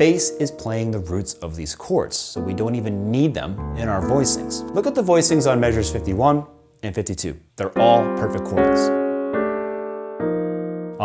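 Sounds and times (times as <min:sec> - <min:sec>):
piano chords: 0:00.0 - 0:06.8, 0:07.7 - 0:11.0.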